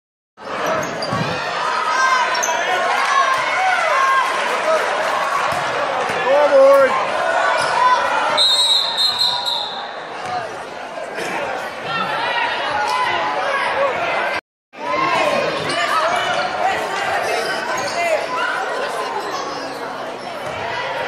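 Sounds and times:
crowd voices and shouts: 0:00.4 - 0:21.0
sneakers squeaking: 0:00.6 - 0:01.4, 0:17.1 - 0:20.7
referee's whistle: 0:08.3 - 0:09.8.

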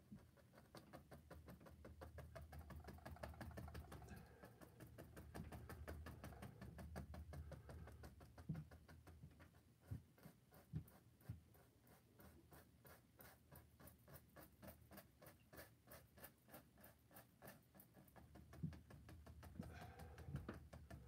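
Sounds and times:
paintbrush strokes on canvas: 0:03.9 - 0:21.0.

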